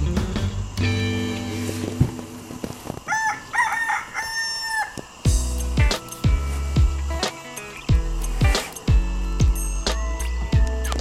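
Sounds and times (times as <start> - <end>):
rooster crowing: 3.0 - 5.2.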